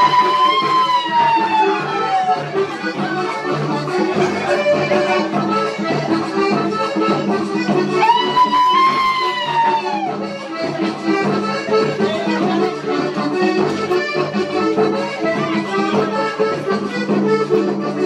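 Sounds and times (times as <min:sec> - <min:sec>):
folk dance music with accordion: 0:00.0 - 0:18.0.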